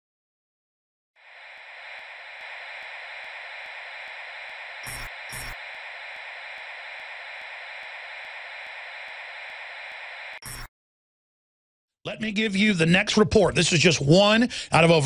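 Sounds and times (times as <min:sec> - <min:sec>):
crackle bursts: 0:01.2 - 0:10.7
electronic static hiss: 0:01.2 - 0:10.7
faint regular ticks: 0:01.2 - 0:10.7.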